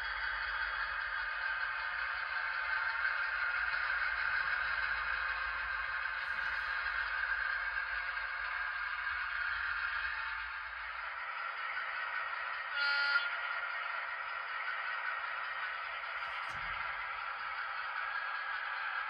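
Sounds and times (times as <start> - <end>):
model train diesel engine sound: 0.0 - 19.0.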